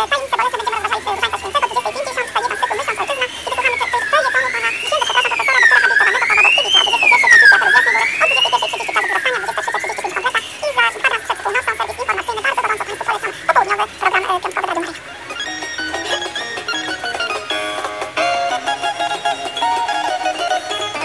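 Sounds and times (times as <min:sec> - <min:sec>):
croaking clicks and chirps: 0:00.0 - 0:17.6
wailing siren: 0:00.7 - 0:11.7.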